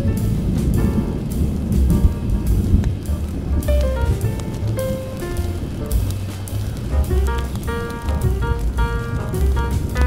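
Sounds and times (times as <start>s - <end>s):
rain hiss: 0.0s - 10.0s
smooth jazz: 0.0s - 10.0s.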